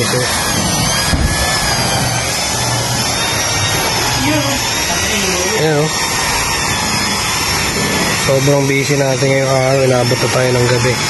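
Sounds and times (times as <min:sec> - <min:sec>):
electric car polisher running: 0:00.0 - 0:11.0.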